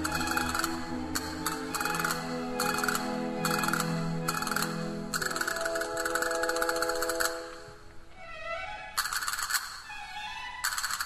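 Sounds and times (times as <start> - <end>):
orchestra sustained chords: 0.0 - 7.8.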